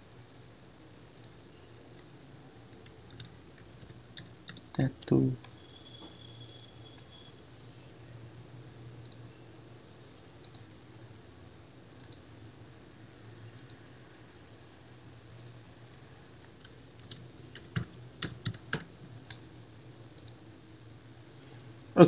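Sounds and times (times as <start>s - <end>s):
low steady hum: 0.0s - 22.0s
typing on computer keyboard: 2.0s - 5.1s, 16.5s - 19.5s.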